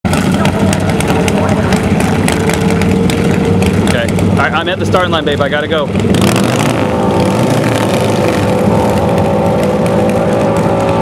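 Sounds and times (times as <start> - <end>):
motorcycle engine running loudly: 0.0 - 11.0.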